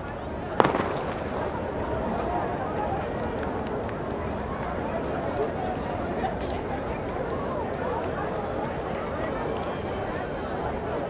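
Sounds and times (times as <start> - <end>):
starting gun bang: 0.6 - 2.4.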